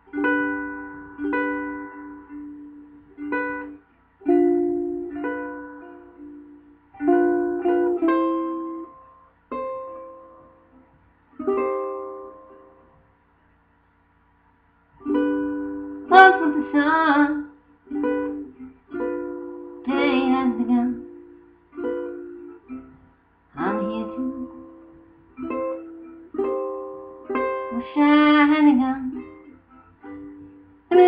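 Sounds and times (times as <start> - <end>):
plucked acoustic string chords: 0.0 - 13.1, 14.9 - 31.0.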